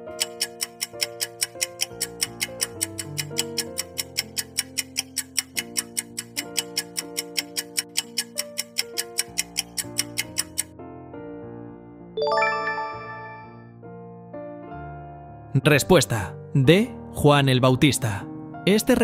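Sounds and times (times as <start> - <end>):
countdown timer ticking: 0.0 - 10.7, 12.2 - 13.6
soft background music: 0.0 - 19.0.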